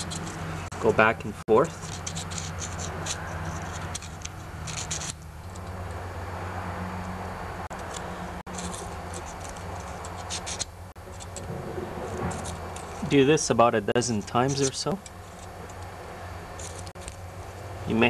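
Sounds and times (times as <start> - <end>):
emery paper scratching metal: 0.0 - 5.9, 7.7 - 18.0.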